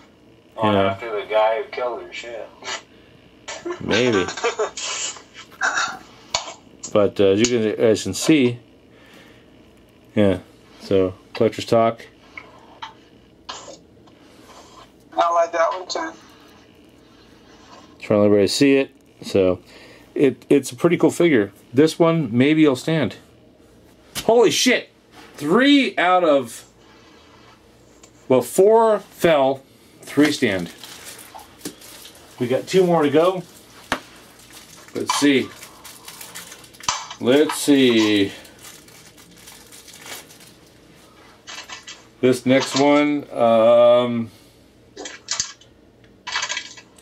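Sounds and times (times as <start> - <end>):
rustling and ticking of plastic: 30.2 - 40.8.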